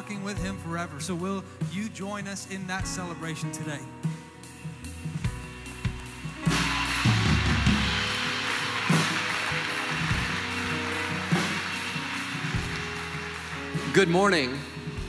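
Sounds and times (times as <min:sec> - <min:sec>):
soft low music notes: 0:00.0 - 0:15.0
crowd clapping: 0:05.9 - 0:14.8.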